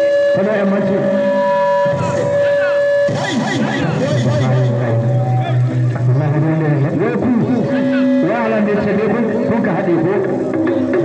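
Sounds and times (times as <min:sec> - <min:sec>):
men shouting and calling: 0:00.4 - 0:10.5.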